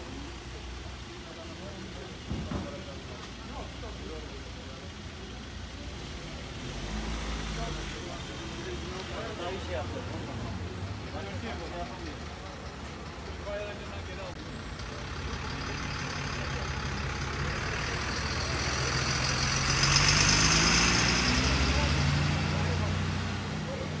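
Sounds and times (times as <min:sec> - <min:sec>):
large vehicle engine droning: 0:00.0 - 0:24.0.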